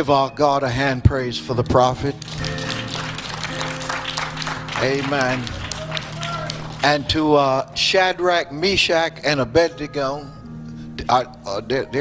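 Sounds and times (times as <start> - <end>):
background music chords: 0.0 - 12.0
congregation applauding: 1.7 - 7.6.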